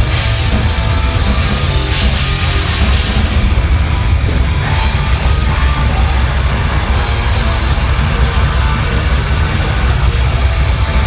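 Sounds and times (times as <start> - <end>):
heavy metal band playing: 0.0 - 11.0.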